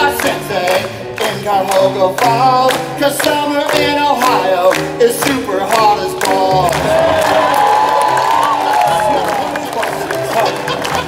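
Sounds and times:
keyboard accompaniment: 0.0 - 11.0
person singing: 0.0 - 11.0
audience cheering: 6.6 - 11.0.

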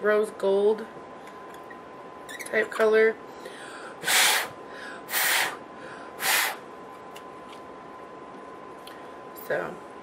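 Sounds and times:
puffs of breath: 3.4 - 6.6.

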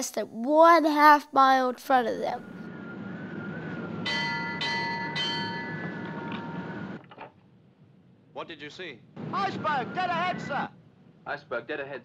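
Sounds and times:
ship's bell ringing: 4.0 - 7.0.

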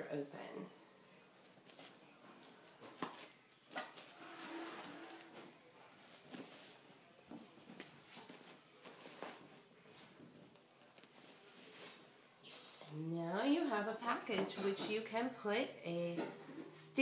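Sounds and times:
fabric rustling: 1.4 - 13.0.

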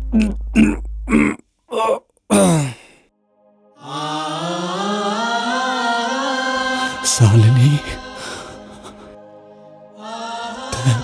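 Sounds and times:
person moaning in distress: 0.0 - 3.0
low music drone: 3.1 - 11.0
strained vocal sounds: 3.8 - 11.0.

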